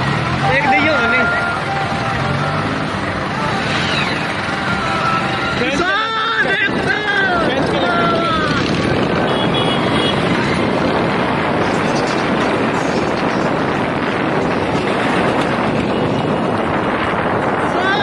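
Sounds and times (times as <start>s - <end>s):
tractor engines running: 0.0s - 18.0s.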